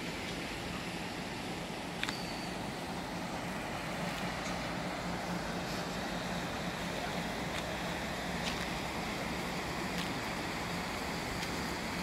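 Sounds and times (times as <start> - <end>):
distant engine hum: 0.0 - 12.0
outdoor noise: 0.0 - 12.0.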